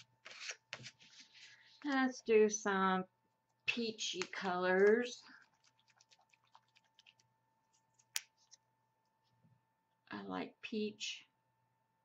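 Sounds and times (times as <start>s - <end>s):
paper rustling: 0.0s - 2.2s.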